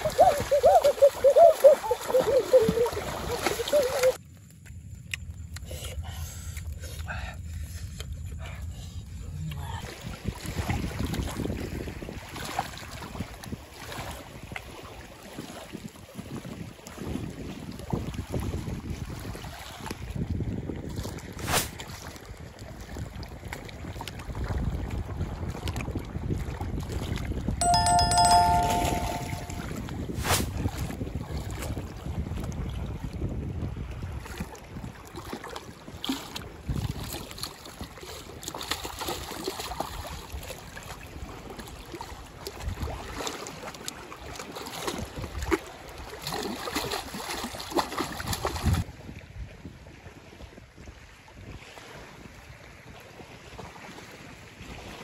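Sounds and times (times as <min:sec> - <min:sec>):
water splashing around wading legs: 0:00.0 - 0:04.2, 0:34.2 - 0:48.8
wind buffeting microphone: 0:15.8 - 0:21.4, 0:22.2 - 0:27.6, 0:29.7 - 0:38.0
bell-like chime: 0:27.6 - 0:29.8.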